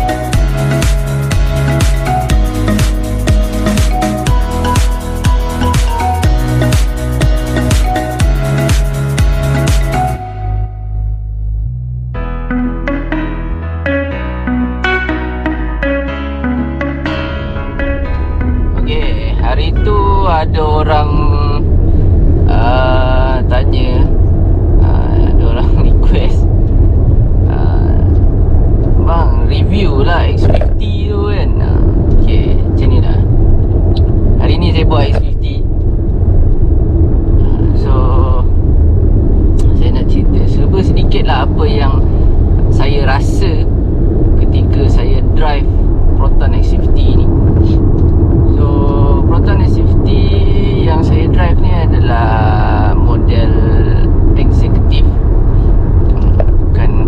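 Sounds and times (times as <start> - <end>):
car engine and road rumble: 0.0 - 57.0
man talking: 18.7 - 21.7, 22.5 - 24.2, 24.8 - 26.4, 29.0 - 33.3, 34.4 - 35.7, 37.4 - 38.6, 39.6 - 42.1, 42.7 - 43.7, 44.4 - 47.8, 48.5 - 55.2, 56.7 - 57.0.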